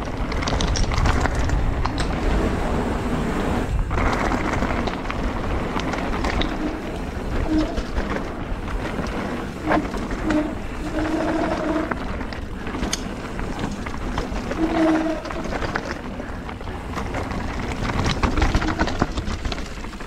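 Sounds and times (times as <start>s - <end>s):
bike tyres rolling over gravel: 0.0s - 20.0s
rushing wind: 0.0s - 20.0s
stones and bike parts rattling: 0.0s - 20.0s.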